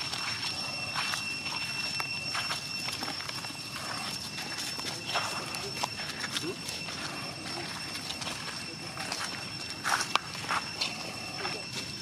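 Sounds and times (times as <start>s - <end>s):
feet rustling dry leaves: 0.0s - 12.0s
steady high-pitched tone: 0.0s - 12.0s.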